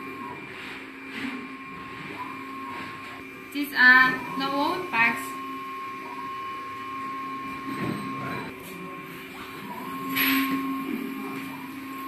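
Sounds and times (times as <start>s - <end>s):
printer machine hum: 0.0s - 12.0s
steady tones: 2.4s - 8.6s.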